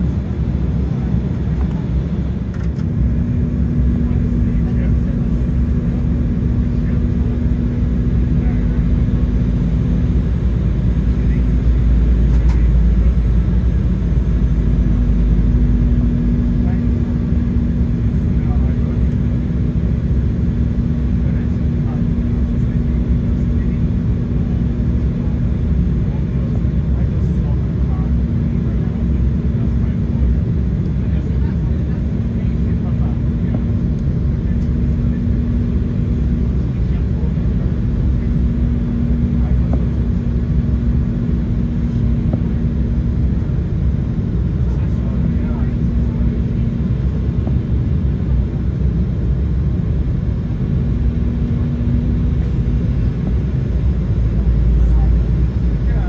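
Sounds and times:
airliner cabin roar: 0.0 - 56.0
steady hum: 0.0 - 56.0.

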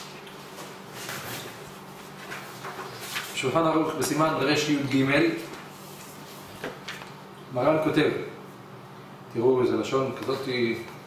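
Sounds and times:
book pages rustling: 0.4 - 3.5.

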